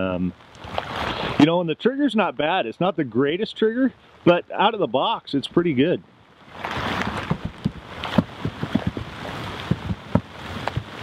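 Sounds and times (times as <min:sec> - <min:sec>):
rain hissing: 0:00.0 - 0:11.0
drops tapping near microphone: 0:06.6 - 0:11.0.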